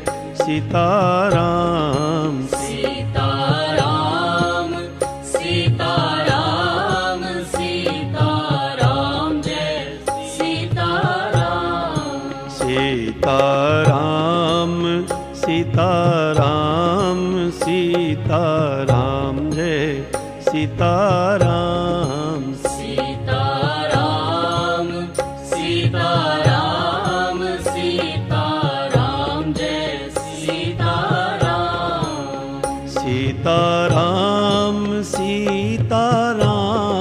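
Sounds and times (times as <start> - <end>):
devotional music with wavering melody: 0.0 - 37.0.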